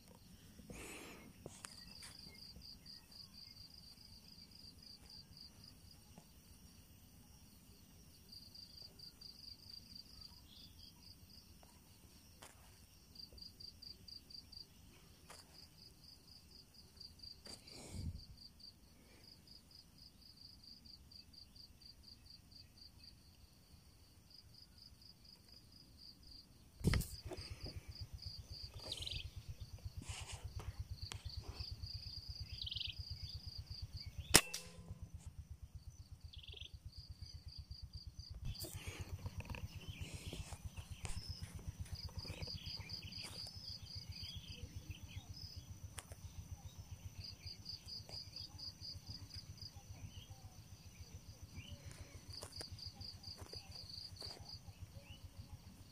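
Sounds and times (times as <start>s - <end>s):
crickets chirping: 0.0s - 55.9s
air rifle firing: 34.2s - 35.0s.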